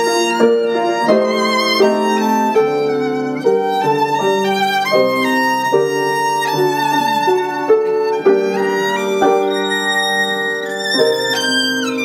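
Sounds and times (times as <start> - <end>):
violin playing slow melody: 0.0 - 12.0.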